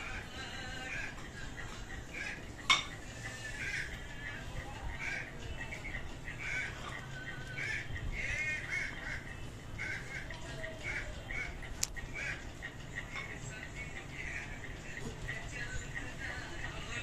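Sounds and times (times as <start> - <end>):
birds harsh calls: 0.0 - 13.2.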